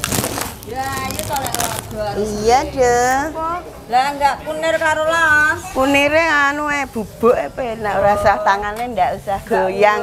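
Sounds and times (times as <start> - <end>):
woman talking: 0.7 - 10.0.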